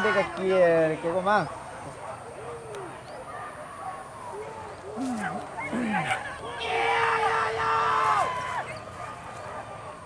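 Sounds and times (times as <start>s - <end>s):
men shouting drawn-out calls: 0.0s - 1.6s, 4.6s - 8.8s.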